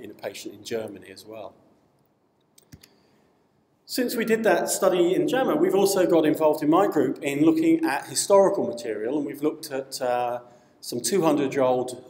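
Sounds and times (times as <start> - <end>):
man speaking: 0.0 - 1.6, 3.9 - 12.0.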